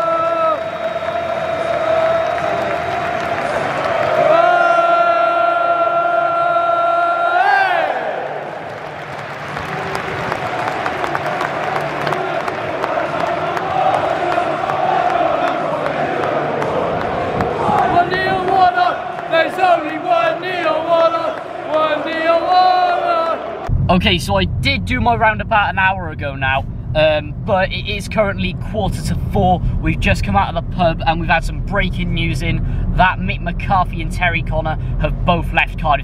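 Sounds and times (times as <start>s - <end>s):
football crowd chanting: 0.0s - 8.8s, 9.5s - 23.7s
crowd noise: 0.0s - 25.4s.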